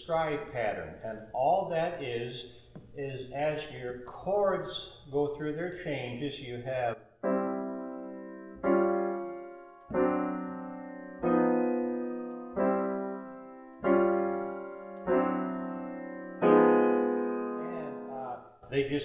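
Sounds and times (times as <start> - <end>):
grand piano chords: 7.2 - 19.0.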